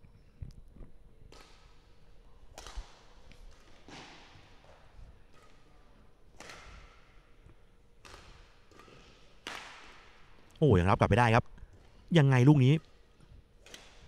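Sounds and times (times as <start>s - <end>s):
badminton rackets hitting shuttlecock: 6.4s - 7.1s, 8.0s - 9.8s.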